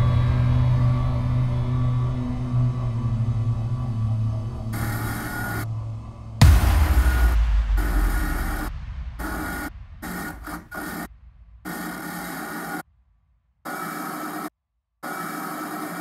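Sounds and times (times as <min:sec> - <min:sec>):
low rumble: 0:00.0 - 0:11.7
static hiss with steady tones: 0:04.8 - 0:05.6, 0:06.9 - 0:11.1.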